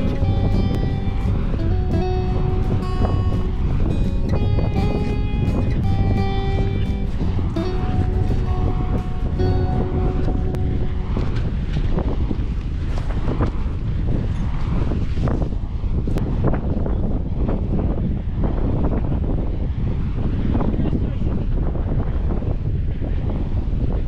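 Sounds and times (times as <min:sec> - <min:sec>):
music with held tones: 0:00.0 - 0:12.0
wind buffeting microphone: 0:00.0 - 0:24.0.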